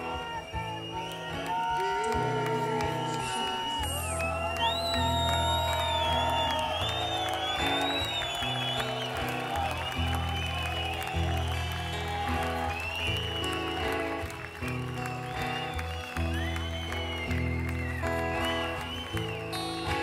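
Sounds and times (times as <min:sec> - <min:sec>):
acoustic guitar: 0:00.0 - 0:20.0
crowd applauding: 0:00.0 - 0:20.0.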